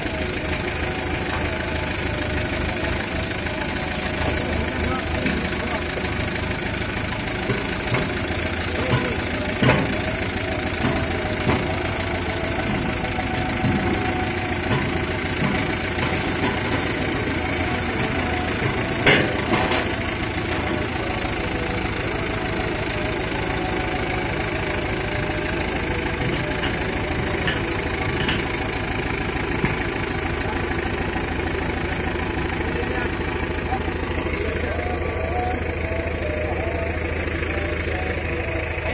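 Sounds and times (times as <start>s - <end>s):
tractor engine running: 0.0s - 38.9s.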